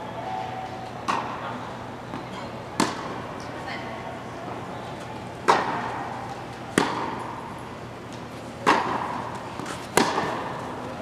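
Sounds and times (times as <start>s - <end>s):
racket hitting tennis ball: 1.1s - 1.4s, 2.1s - 3.5s, 5.4s - 10.8s.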